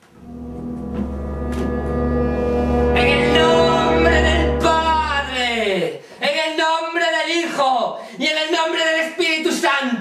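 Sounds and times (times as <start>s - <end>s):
ominous soundtrack drone: 0.0s - 5.7s
deep rumble: 0.1s - 5.6s.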